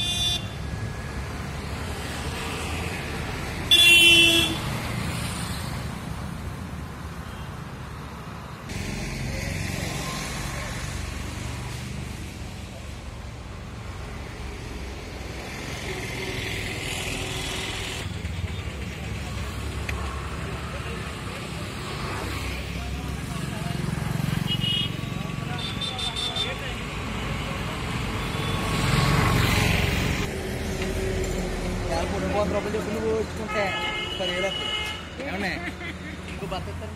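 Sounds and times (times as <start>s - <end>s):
traffic rumble: 0.0s - 36.9s.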